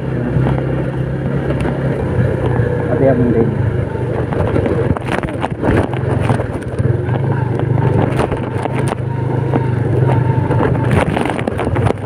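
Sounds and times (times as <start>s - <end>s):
motorcycle engine running: 0.0s - 12.0s
wind buffeting microphone: 0.0s - 12.0s.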